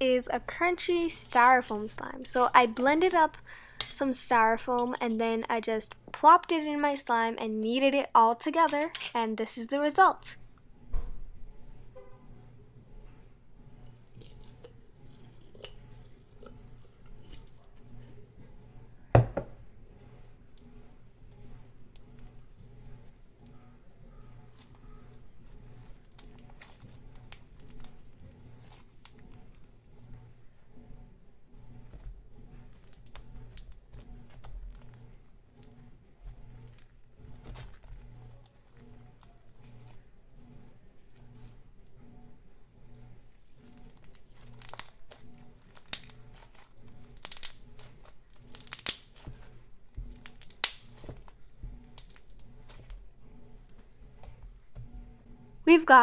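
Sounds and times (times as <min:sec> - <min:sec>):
crunchy slime crackling: 0:00.1 - 0:05.4, 0:14.0 - 0:18.3, 0:20.1 - 0:30.2, 0:31.8 - 0:41.6, 0:43.2 - 0:55.0.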